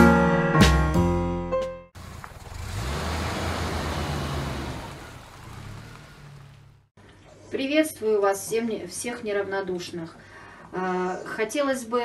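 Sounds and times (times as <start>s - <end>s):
piano music: 0.0s - 1.9s
road vehicle passing: 2.0s - 6.9s.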